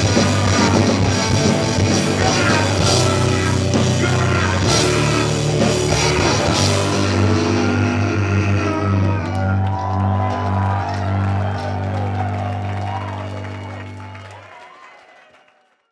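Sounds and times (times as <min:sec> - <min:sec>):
distorted guitar and bass chord: 0:00.0 - 0:13.9
crowd whooping and shouting: 0:00.0 - 0:15.8.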